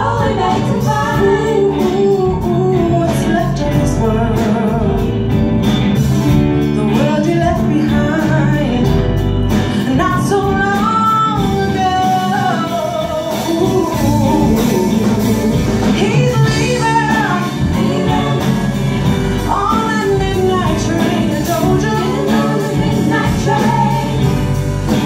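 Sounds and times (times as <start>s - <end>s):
woman singing: 0.0s - 5.3s, 6.6s - 25.0s
soul band playing: 0.0s - 25.0s.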